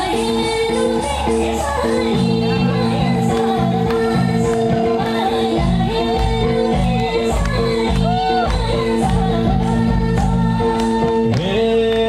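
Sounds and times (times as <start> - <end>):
person singing: 0.0 - 12.0
steady dance beat: 2.2 - 10.7.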